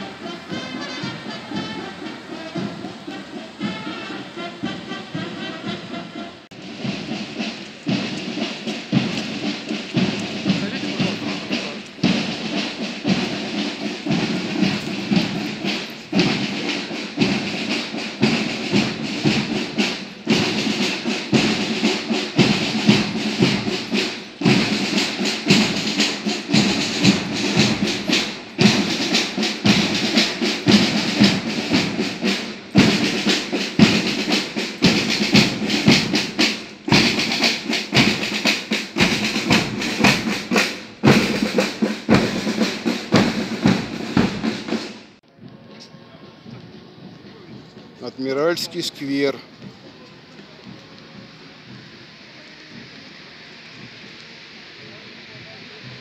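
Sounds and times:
marching band playing: 0:00.0 - 0:56.0
snare drums: 0:00.0 - 0:56.0.

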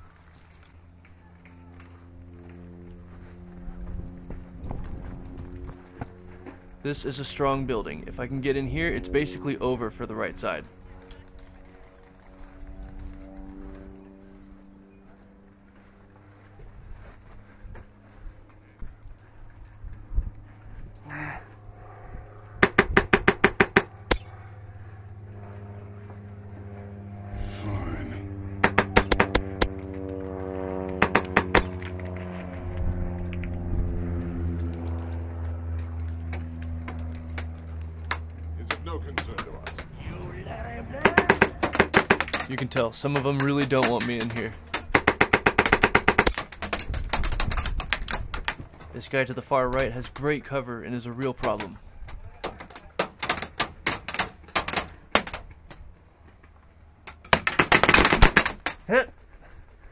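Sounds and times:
airsoft gun rapid bursts: 0:28.6 - 0:29.7, 0:31.0 - 0:31.9, 0:41.0 - 0:42.6, 0:43.4 - 0:47.6, 0:57.3 - 0:58.7.

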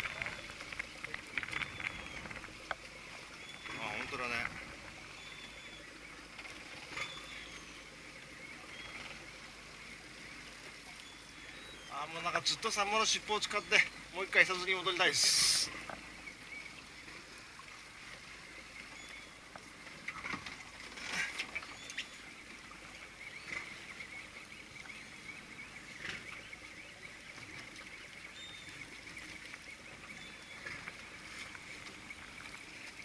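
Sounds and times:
waves lapping: 0:00.0 - 0:33.0
wind and water hiss: 0:00.0 - 0:33.0.

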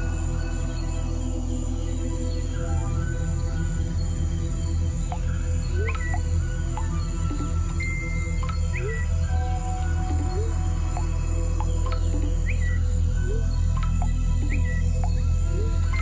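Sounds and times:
ambient music drone: 0:00.0 - 0:16.0
bird-like chirps: 0:05.1 - 0:16.0.

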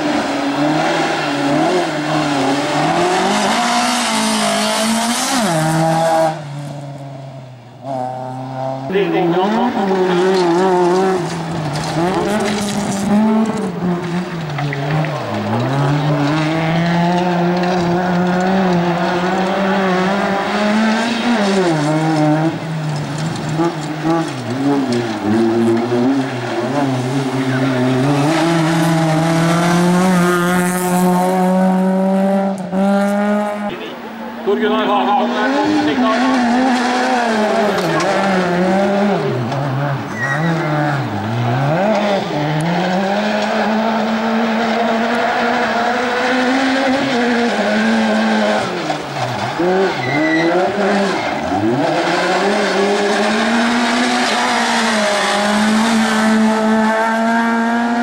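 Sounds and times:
rally car engine revving through gears: 0:00.0 - 0:58.0
rally car engines racing: 0:00.0 - 0:58.0.

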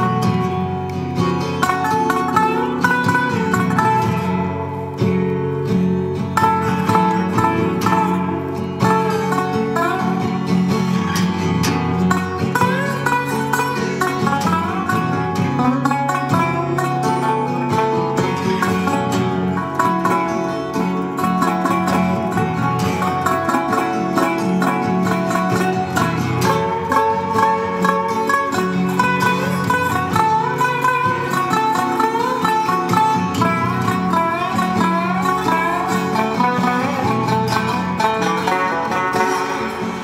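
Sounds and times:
blues on acoustic guitar: 0:00.0 - 0:40.0.

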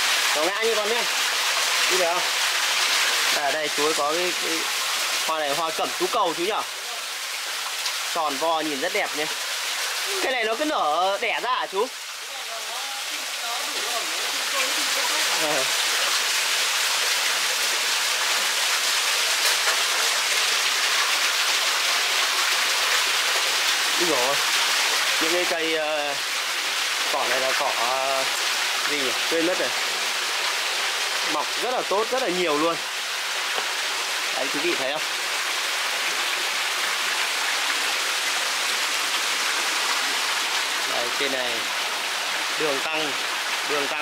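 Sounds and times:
water rushing over rocks: 0:00.0 - 0:44.0.

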